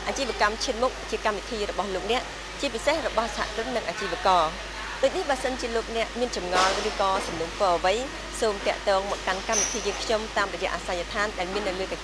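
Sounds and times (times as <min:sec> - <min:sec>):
steady background hiss: 0:00.0 - 0:12.0
woman speaking: 0:00.0 - 0:12.0.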